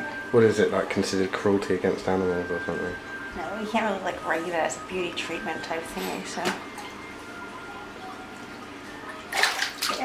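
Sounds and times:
water splashing in a foot tank: 0:09.0 - 0:10.0.

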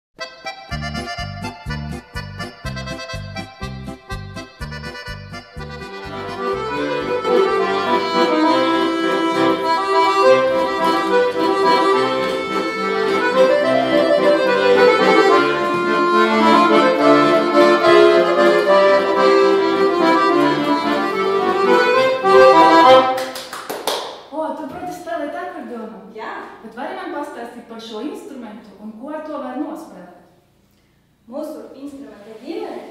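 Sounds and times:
accordion playing lively tune: 0:00.2 - 0:23.4.

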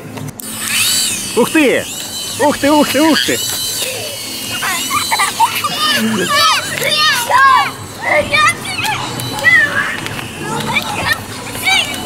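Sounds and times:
young children squealing and shouting: 0:00.5 - 0:12.0.

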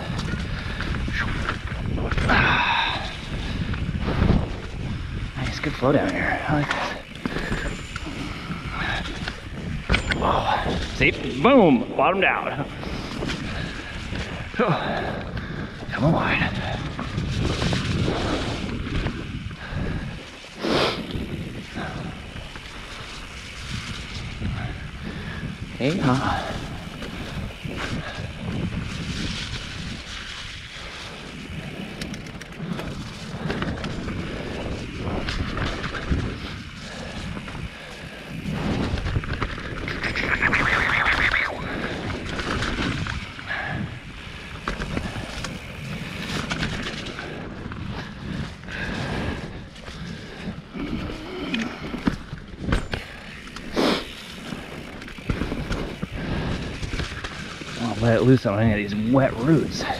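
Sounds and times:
bike knocking and rattling: 0:00.0 - 0:59.9
bike tyres on dirt trail: 0:00.0 - 0:59.9
wind on microphone: 0:00.0 - 0:59.9.

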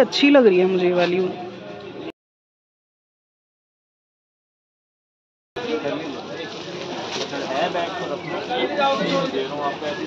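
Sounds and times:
background bustle: 0:00.0 - 0:02.1, 0:05.6 - 0:10.0.

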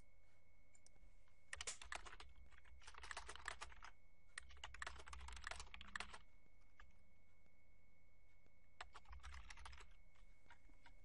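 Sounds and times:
typing on computer keyboard: 0:01.5 - 0:06.2, 0:08.8 - 0:11.0.

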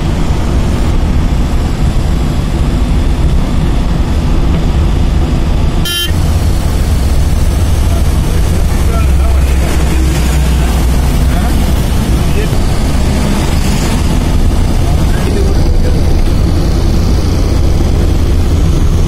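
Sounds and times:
engine and road rumble: 0:00.0 - 0:19.0.

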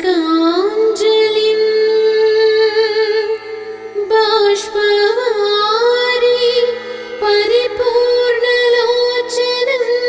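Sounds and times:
woman singing a hymn: 0:04.0 - 0:10.0.

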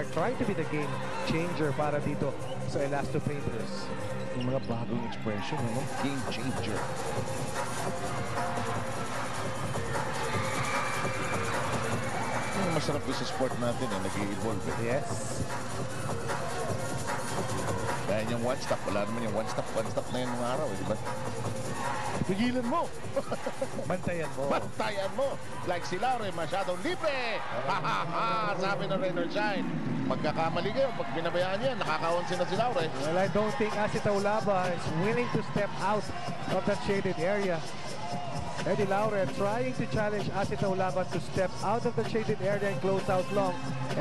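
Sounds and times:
arena crowd noise: 0:00.0 - 0:44.0
music over loudspeakers: 0:00.0 - 0:44.0
man talking: 0:18.0 - 0:21.1.

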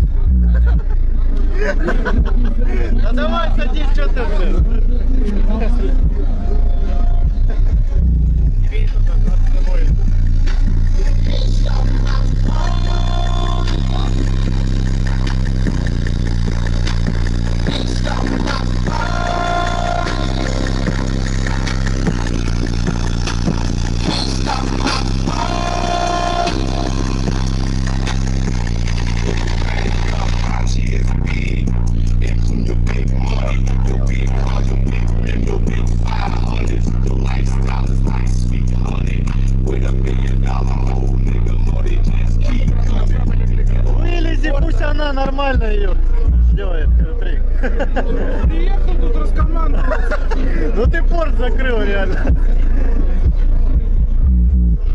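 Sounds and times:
bass-heavy music from car speakers: 0:00.0 - 0:54.9.

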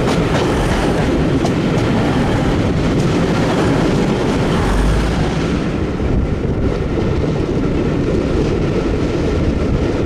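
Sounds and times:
train wheels rumbling at speed: 0:00.0 - 0:10.0
wind buffeting microphone: 0:00.0 - 0:10.0.

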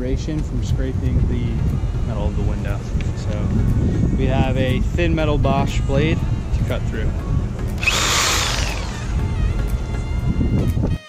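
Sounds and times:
wind rumble on microphone: 0:00.0 - 0:11.0
jigsaw motor whining: 0:07.8 - 0:09.2.

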